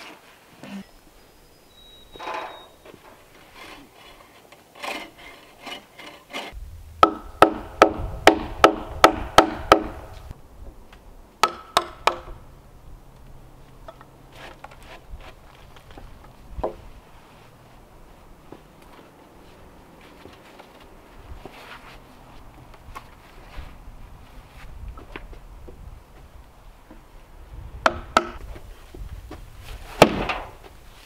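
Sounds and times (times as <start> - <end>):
wooden beam scraping and knocking: 2.1 - 10.8, 13.8 - 27.2.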